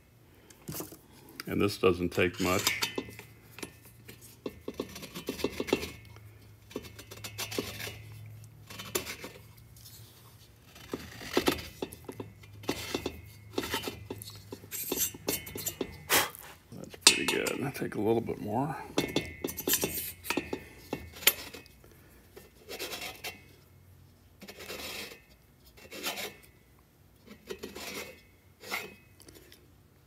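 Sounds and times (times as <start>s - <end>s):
metallic scraping of valve seat cutter: 1.9s - 10.0s, 10.6s - 18.1s, 18.9s - 21.7s, 24.4s - 26.6s
metal clink: 2.4s - 6.2s, 11.7s - 16.1s, 17.0s - 17.8s, 18.8s - 21.6s.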